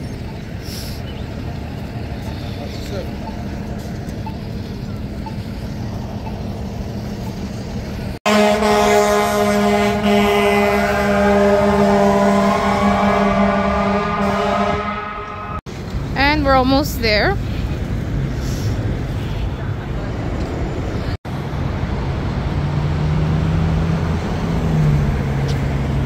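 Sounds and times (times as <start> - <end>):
street traffic: 0.0 - 26.0
rising whine: 12.4 - 15.7.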